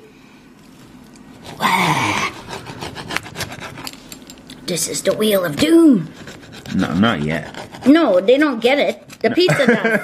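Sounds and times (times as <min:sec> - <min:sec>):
pizza cutter crackling through crust: 0:01.3 - 0:04.1, 0:05.0 - 0:09.3.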